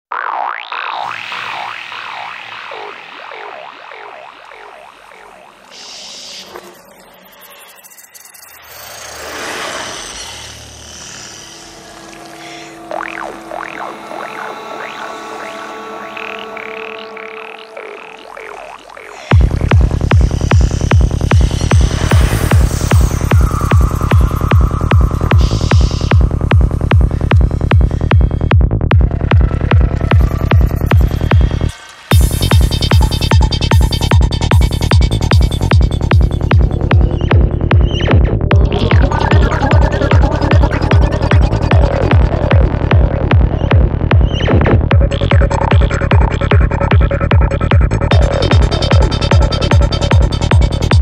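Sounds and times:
wobbling electronic tone: 0.1 - 51.0
hissing swell: 1.0 - 28.2
low synth bed: 10.0 - 51.0
rolling bass: 12.1 - 51.0
psytrance kick drum: 19.3 - 51.0.

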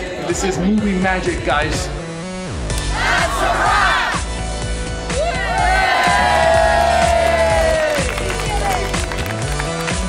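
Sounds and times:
background music: 0.0 - 10.0
young people cheering and whooping: 5.1 - 8.8.

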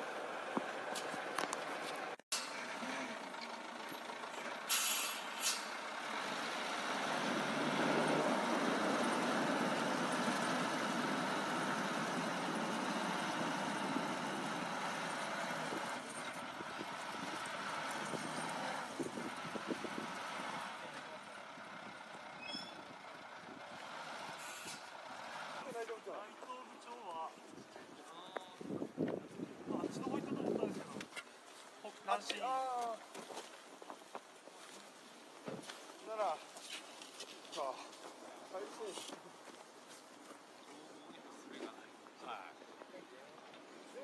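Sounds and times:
plow scraping snow: 0.0 - 26.3
snowplow engine: 0.0 - 27.2
short hisses: 4.7 - 5.8, 24.4 - 24.9.

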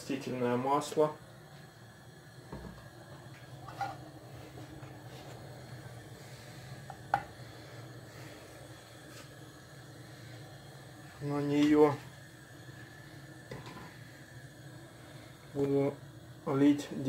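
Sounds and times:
faint steady low hum: 0.0 - 17.0.

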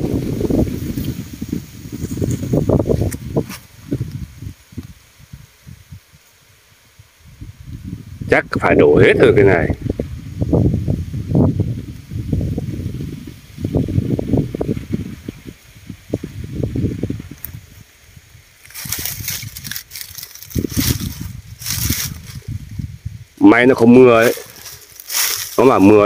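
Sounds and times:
wind buffeting microphone: 0.0 - 6.2, 6.9 - 26.0
crackly rustling: 18.5 - 22.9, 23.8 - 26.0.

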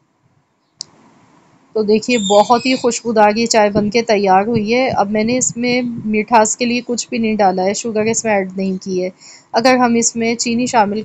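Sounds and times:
faint room hiss: 0.0 - 11.0
woman speaking: 1.8 - 11.0.

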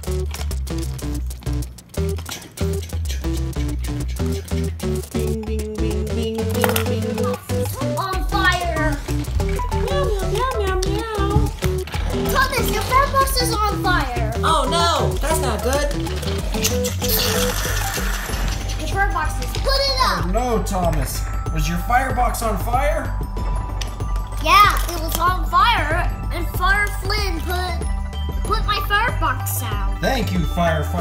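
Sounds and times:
light background music: 0.0 - 31.0.

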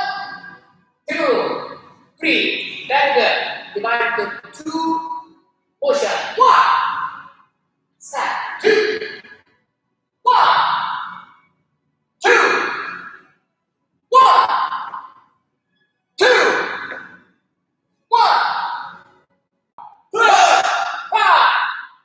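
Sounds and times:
person calling out commands: 8.1 - 9.2, 12.2 - 12.8, 14.1 - 14.6, 16.2 - 16.8.

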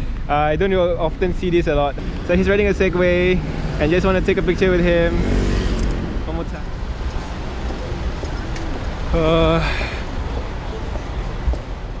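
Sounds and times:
city road traffic hum: 0.0 - 12.0.

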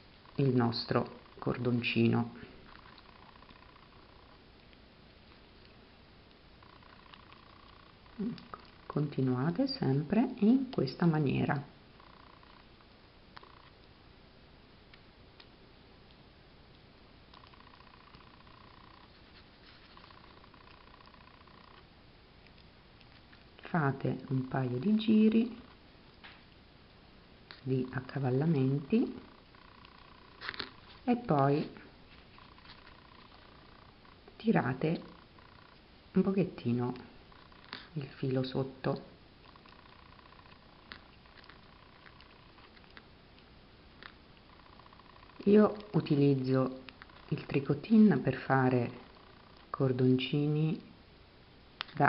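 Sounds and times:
faint high hum and hiss: 0.0 - 52.0.

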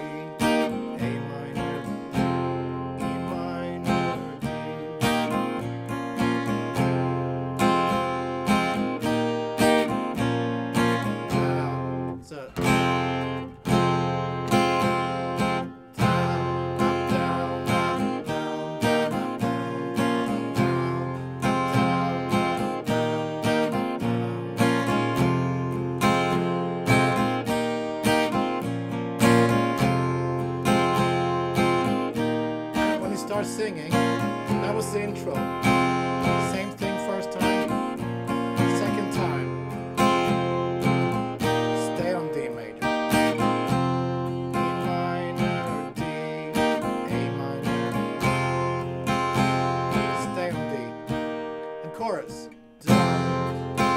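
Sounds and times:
acoustic guitar strumming chords: 0.0 - 53.9.

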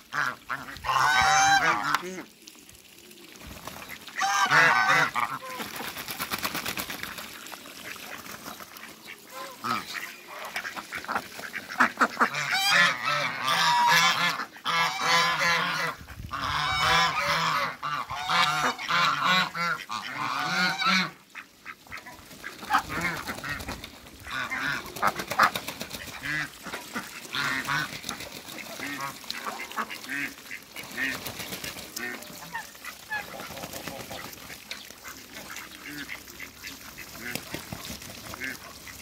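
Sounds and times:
ducks calling: 0.0 - 2.3, 3.8 - 5.8, 7.8 - 39.0
geese honking: 0.1 - 2.2, 4.1 - 5.6, 9.0 - 23.6.

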